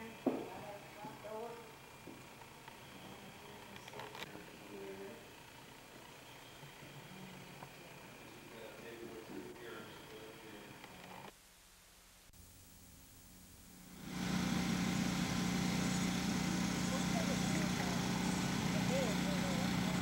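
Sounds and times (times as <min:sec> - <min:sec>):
low hum with hiss: 0:00.0 - 0:20.0
faint voices: 0:06.6 - 0:11.3, 0:16.8 - 0:20.0.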